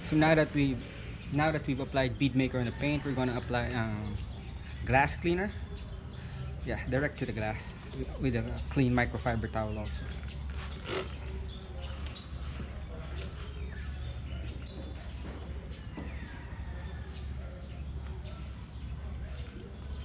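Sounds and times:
faint bird chirps: 2.7s - 20.0s.

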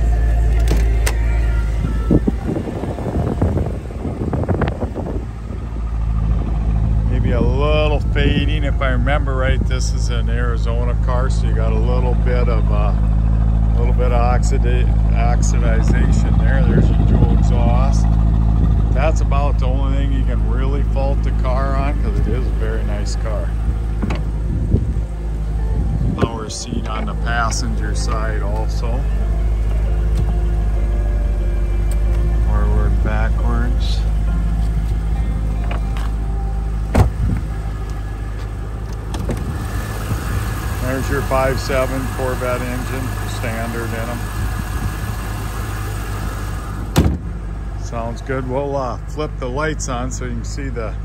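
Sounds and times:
car engine idling: 0.0s - 51.0s.

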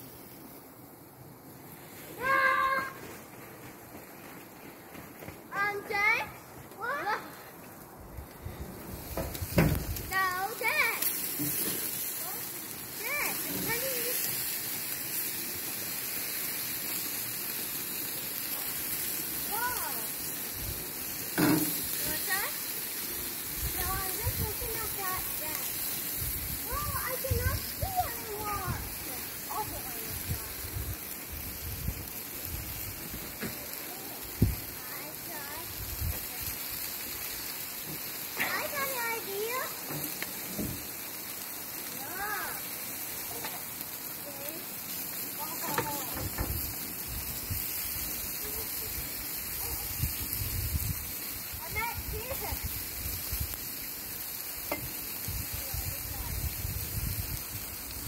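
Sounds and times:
steady hiss: 0.0s - 58.0s
children calling and shouting: 1.9s - 3.2s, 5.4s - 8.4s, 9.8s - 14.6s, 17.0s - 31.2s, 33.4s - 36.9s, 37.7s - 40.2s, 41.8s - 46.6s, 48.2s - 50.0s, 51.5s - 52.8s
wind buffeting microphone: 23.5s - 33.2s, 34.3s - 34.7s, 49.8s - 53.6s, 55.3s - 58.0s.

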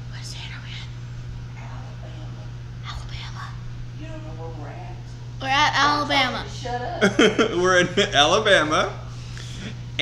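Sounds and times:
steady low hum: 0.0s - 10.0s
soft whispering: 0.1s - 1.0s, 2.8s - 3.6s.

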